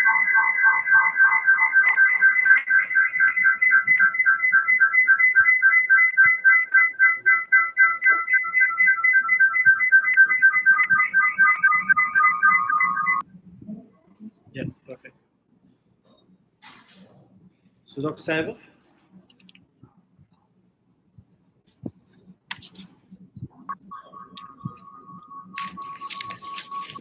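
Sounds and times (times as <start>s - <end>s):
electronic ringtone trilling: 0.0s - 13.2s, 23.7s - 27.0s.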